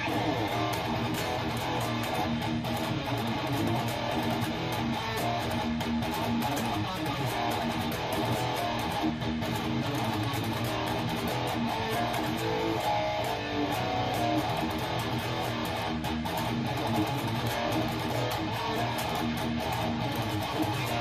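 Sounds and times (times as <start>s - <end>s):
distorted electric guitar riffing: 0.0s - 21.0s.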